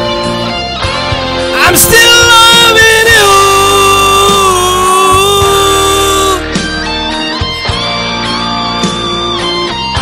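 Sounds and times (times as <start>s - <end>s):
live rock band: 0.0s - 10.0s
low drum beats: 1.0s - 8.0s
man singing a long note: 1.6s - 6.4s.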